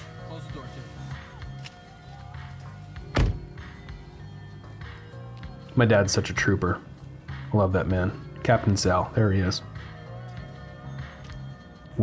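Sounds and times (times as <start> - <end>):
background music with low pulse: 0.0 - 12.0
car door shutting: 3.0 - 3.6.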